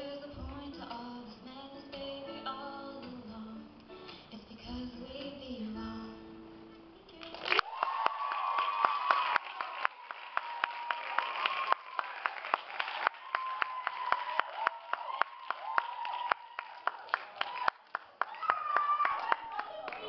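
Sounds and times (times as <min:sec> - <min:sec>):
audience applauding: 0:07.2 - 0:20.0
voices cheering: 0:07.6 - 0:20.0.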